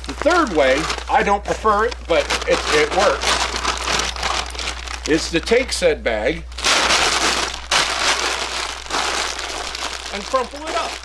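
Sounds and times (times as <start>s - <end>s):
feed bag crinkling: 0.0s - 5.7s, 6.5s - 11.0s.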